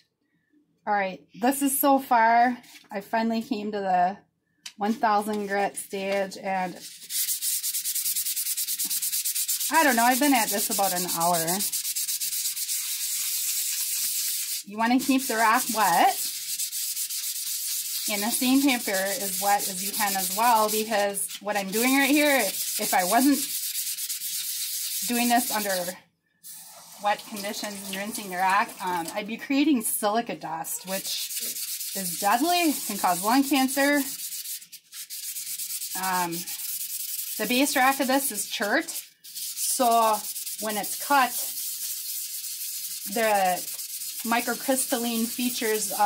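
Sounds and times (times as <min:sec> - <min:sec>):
stone scratching on wet sandpaper: 0:06.6 - 0:25.9, 0:26.5 - 0:29.2, 0:30.8 - 0:46.0.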